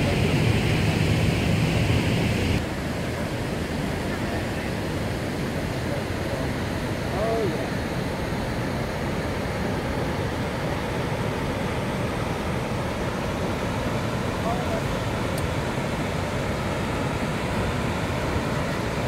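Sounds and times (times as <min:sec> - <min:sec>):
water rushing over falls: 0:00.0 - 0:19.0.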